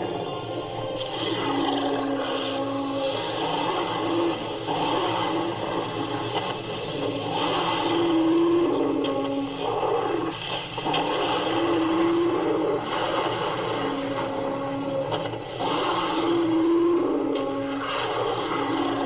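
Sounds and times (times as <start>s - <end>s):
animal snarls and growls: 1.0s - 19.0s.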